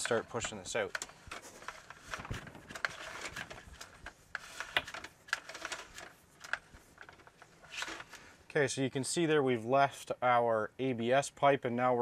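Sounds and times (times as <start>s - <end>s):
push cable clicking and scraping: 0.0s - 8.3s.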